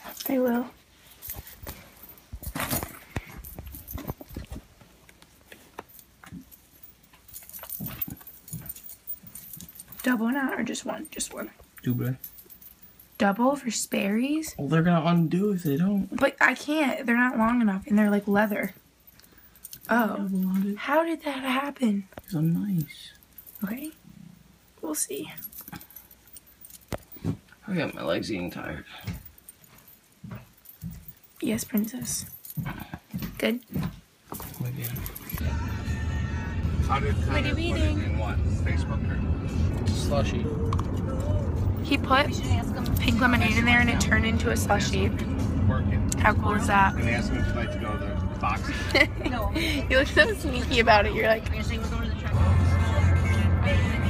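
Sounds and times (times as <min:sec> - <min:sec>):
rustling and handling noise: 0:00.0 - 0:35.4
metal bangles clinking: 0:00.0 - 0:35.8, 0:39.9 - 0:52.3.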